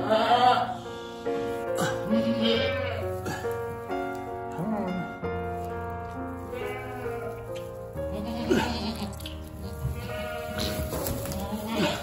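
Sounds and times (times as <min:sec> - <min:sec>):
goat bleating: 0:00.0 - 0:00.7, 0:02.0 - 0:03.1, 0:06.5 - 0:12.0
background music: 0:00.0 - 0:12.0.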